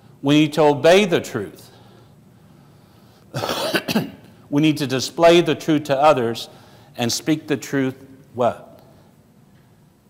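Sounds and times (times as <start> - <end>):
man clearing throat: 3.3 - 4.3.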